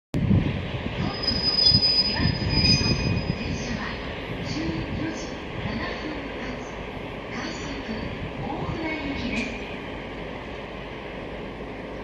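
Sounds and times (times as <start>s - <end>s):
low rumble of locomotive: 0.2s - 12.0s
steel wheels squealing on rails: 1.0s - 3.8s.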